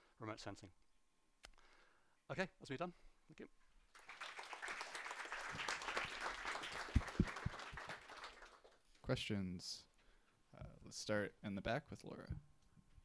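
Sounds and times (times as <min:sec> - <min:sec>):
audience applauding: 0:03.9 - 0:08.8.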